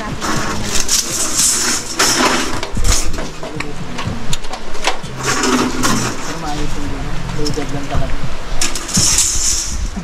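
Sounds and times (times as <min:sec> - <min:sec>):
hissing metal scrape: 0:00.1 - 0:03.3, 0:05.1 - 0:06.9, 0:08.6 - 0:10.0.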